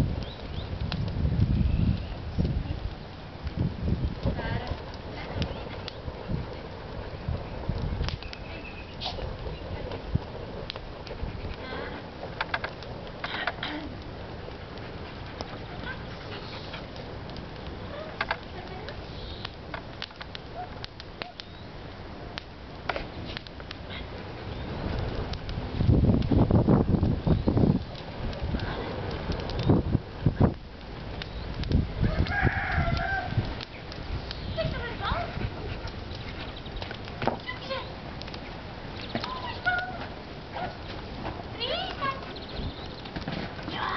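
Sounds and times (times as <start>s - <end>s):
paws scraping soil: 4.2s - 13.7s, 14.4s - 19.4s, 32.1s - 43.9s
dog panting: 11.0s - 12.3s, 14.5s - 17.1s, 34.9s - 36.6s.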